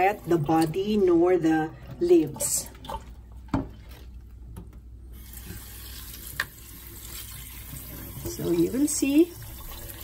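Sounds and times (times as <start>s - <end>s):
tap water splashing into sink: 4.6s - 10.0s.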